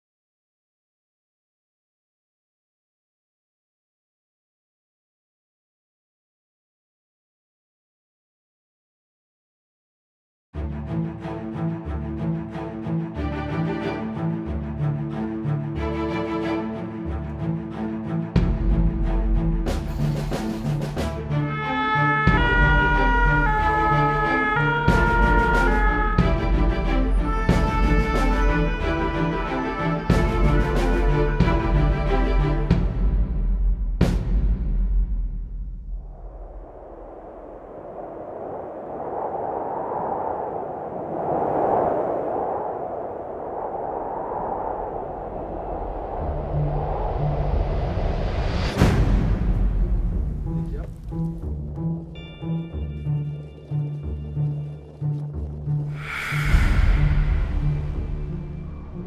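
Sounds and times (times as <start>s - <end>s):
soundtrack music: 10.6s - 35.4s
two-tone emergency siren: 21.6s - 26.4s
low bass notes: 22.3s - 35.2s, 48.8s - 52.2s
whooshing rush of noise: 35.0s - 51.2s, 55.9s - 59.0s.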